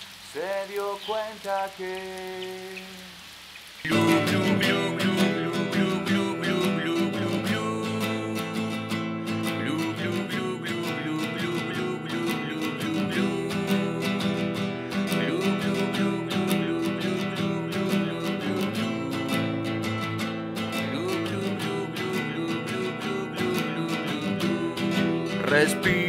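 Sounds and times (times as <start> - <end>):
strummed nylon-string guitar: 3.9 - 26.0.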